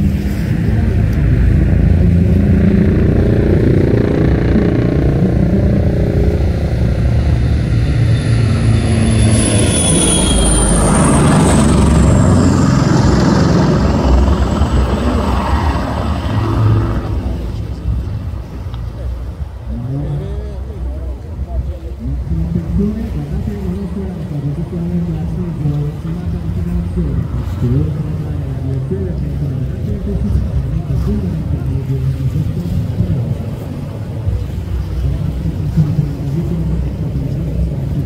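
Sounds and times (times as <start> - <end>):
high whine sliding down: 0.0 - 18.7
low engine rumble: 0.0 - 38.0.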